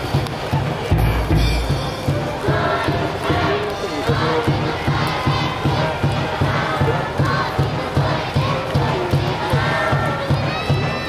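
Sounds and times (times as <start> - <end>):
crowd chanting and shouting: 0.0 - 11.0
steady drumbeat: 0.0 - 11.0.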